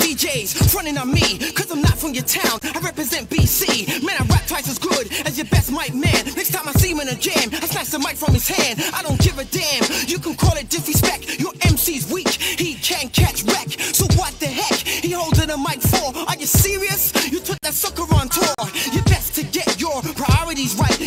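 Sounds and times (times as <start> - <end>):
rapping over a beat: 0.0 - 21.0
deep kick drum dropping in pitch: 1.9 - 2.2, 4.2 - 4.6, 8.3 - 9.5, 14.1 - 14.4, 19.0 - 19.4.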